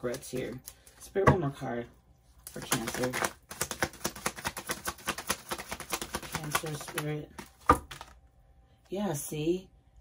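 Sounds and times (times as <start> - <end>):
cards being shuffled: 2.4 - 8.2.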